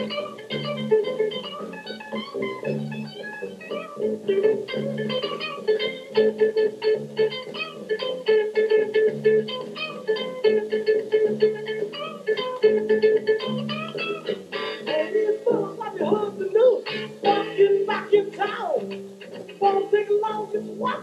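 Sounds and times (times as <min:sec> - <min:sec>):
guitar playing rapid lead notes: 0:00.0 - 0:21.0
held bass notes: 0:00.0 - 0:21.0.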